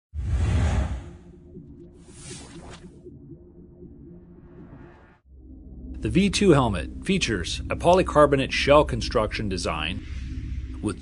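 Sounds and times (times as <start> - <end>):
pulsing background music: 1.1 - 11.0.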